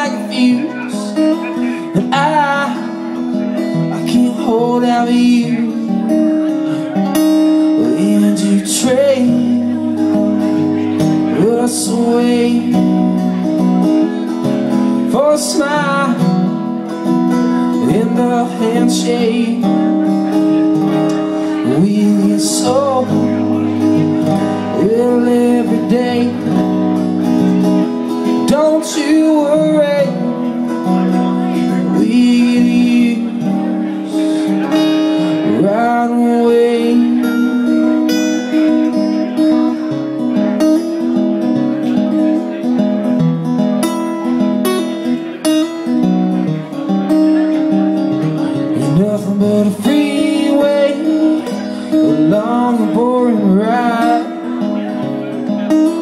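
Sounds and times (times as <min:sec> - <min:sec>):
person singing: 0:00.0 - 0:38.6, 0:48.2 - 0:56.0
acoustic guitar strumming chords: 0:00.0 - 0:56.0.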